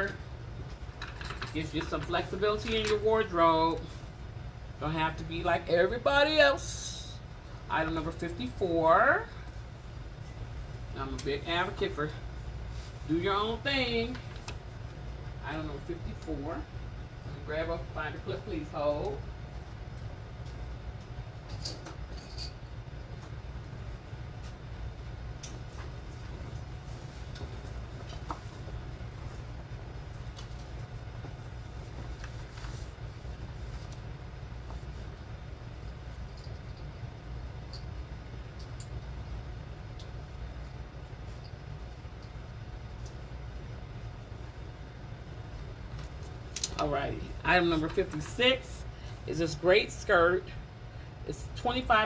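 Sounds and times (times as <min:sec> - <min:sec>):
low room rumble: 0:00.0 - 0:52.0
clothing rustling: 0:23.9 - 0:35.3.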